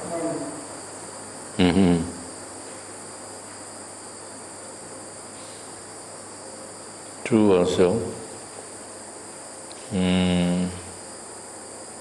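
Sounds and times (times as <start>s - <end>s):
insects chirring: 0.0s - 12.0s
man's short vocal sound: 1.6s - 2.2s, 9.9s - 10.9s.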